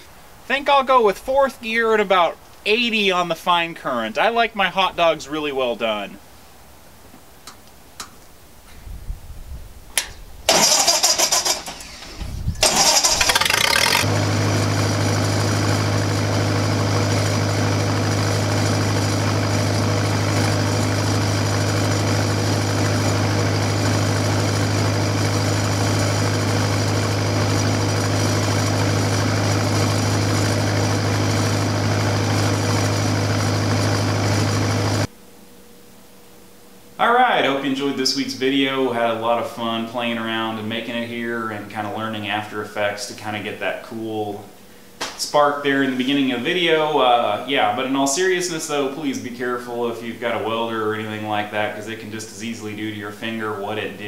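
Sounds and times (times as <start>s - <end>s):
engine starting bursts: 10.5s - 14.1s
engine welder running: 10.5s - 35.1s.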